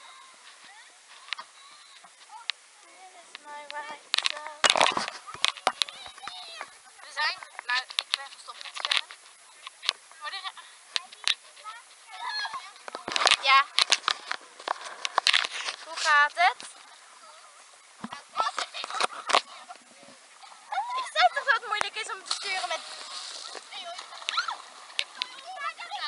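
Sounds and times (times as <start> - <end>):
water splashes: 0.0 - 26.0
girls shrieking and laughing: 20.6 - 22.6, 23.4 - 26.0.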